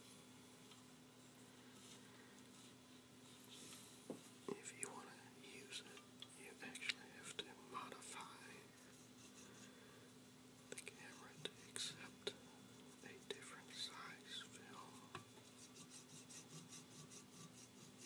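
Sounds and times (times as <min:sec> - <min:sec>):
faint whispering: 0:04.5 - 0:08.8, 0:10.7 - 0:15.1.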